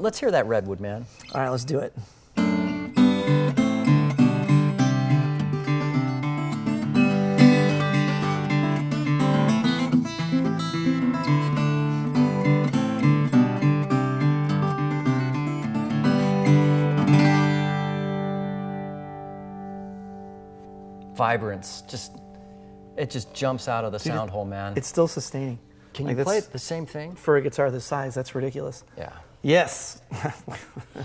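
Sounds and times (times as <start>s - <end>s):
acoustic guitar picking and chords: 2.3s - 26.4s.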